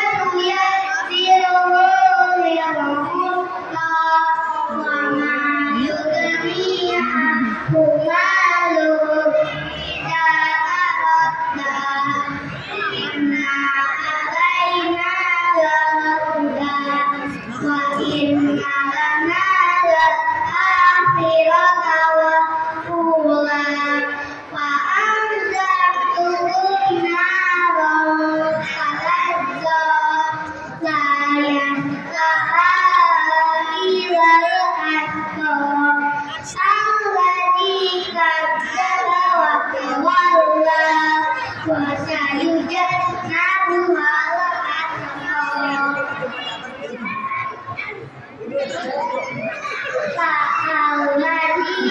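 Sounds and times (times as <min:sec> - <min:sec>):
children singing: 0:00.0 - 0:51.9.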